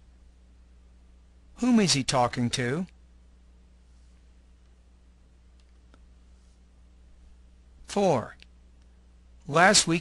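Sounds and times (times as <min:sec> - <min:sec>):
faint low hum: 0:00.0 - 0:10.0
person speaking: 0:01.5 - 0:03.0, 0:07.8 - 0:08.6, 0:09.4 - 0:10.0.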